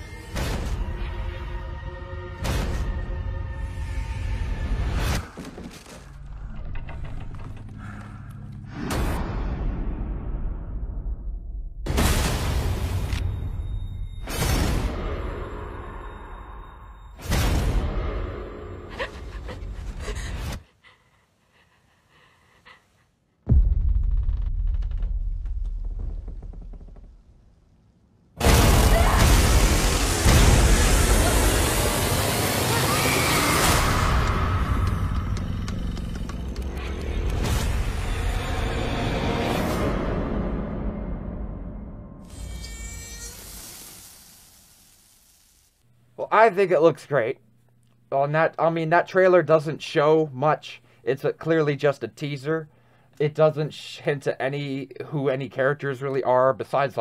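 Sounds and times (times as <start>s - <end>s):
loud low hit: 23.5s - 26.3s
deep boom: 23.5s - 27.4s
deep rumble: 23.5s - 27.8s
high thin buzz: 42.2s - 45.8s.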